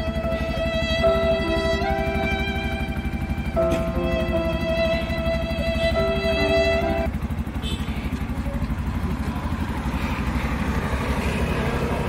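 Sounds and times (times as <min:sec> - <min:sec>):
background music: 0:00.0 - 0:07.2
auto-rickshaw engine idling: 0:00.0 - 0:12.0.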